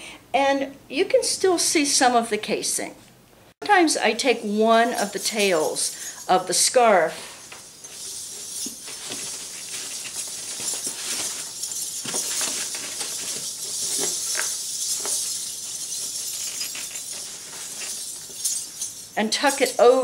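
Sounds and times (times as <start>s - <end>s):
fabric rustling: 4.8s - 20.0s
metal coins jingling: 4.8s - 20.0s.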